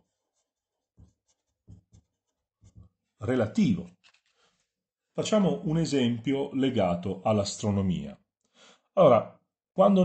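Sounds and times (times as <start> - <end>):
marker pen writing on paper: 0.0 - 3.2.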